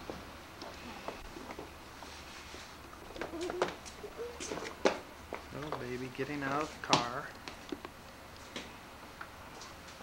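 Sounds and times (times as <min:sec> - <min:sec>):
baby cooing: 0:03.2 - 0:04.6.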